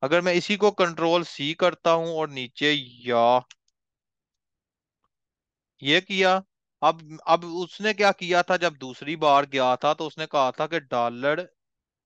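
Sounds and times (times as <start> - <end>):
man speaking: 0.0 - 3.5, 5.8 - 11.5.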